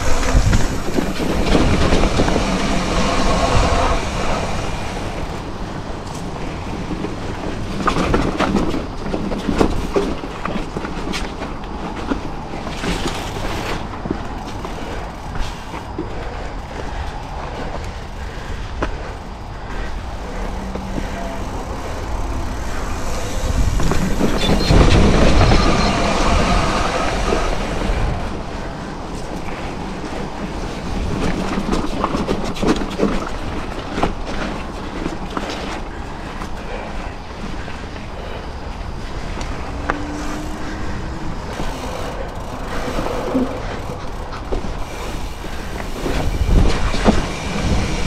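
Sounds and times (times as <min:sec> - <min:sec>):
rushing air: 0:00.0 - 0:09.0, 0:11.6 - 0:31.8, 0:35.9 - 0:48.0
bike rattling over bumps: 0:00.0 - 0:48.0
tyre noise on dirt: 0:00.0 - 0:48.0.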